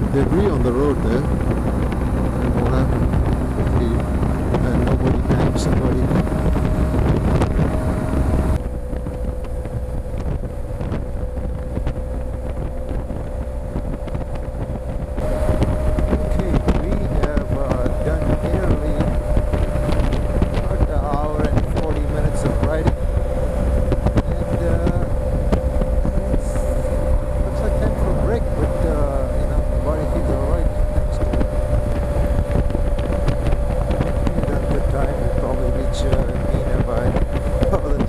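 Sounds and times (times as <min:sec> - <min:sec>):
motorcycle engine cruising: 0:00.0 - 0:38.0
wind noise on microphone: 0:00.0 - 0:38.0.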